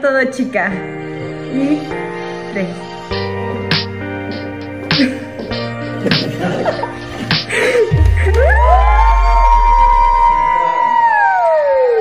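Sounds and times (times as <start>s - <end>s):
deep bass drop: 7.9s - 10.6s.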